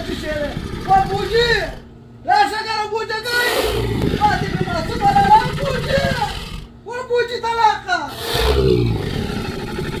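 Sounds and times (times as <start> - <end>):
dinosaur roar: 0.2 - 1.9, 3.3 - 6.7, 8.1 - 10.0.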